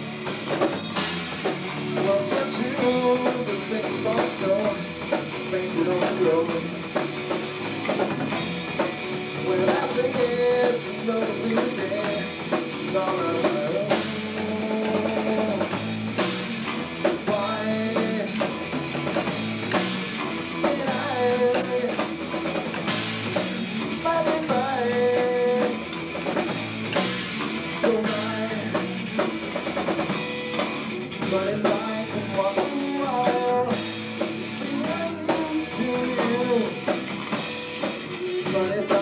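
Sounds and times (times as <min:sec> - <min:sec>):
bass guitar: 0:00.0 - 0:39.0
drum kit: 0:00.0 - 0:39.0
electric guitar: 0:00.0 - 0:39.0
person singing: 0:01.9 - 0:06.8, 0:09.4 - 0:15.8, 0:17.2 - 0:18.6, 0:20.6 - 0:22.1, 0:23.9 - 0:25.9, 0:27.8 - 0:28.9, 0:31.2 - 0:36.9, 0:38.0 - 0:39.0.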